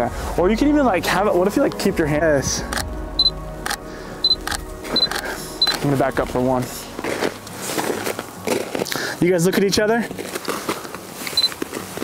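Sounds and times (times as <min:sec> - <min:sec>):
footsteps in snow: 0:04.8 - 0:12.0.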